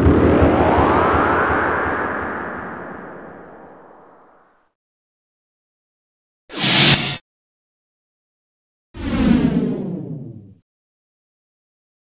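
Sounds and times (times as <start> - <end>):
loud hit with deep rumble: 0.0 - 2.4
rising pitched sweep: 0.0 - 4.4.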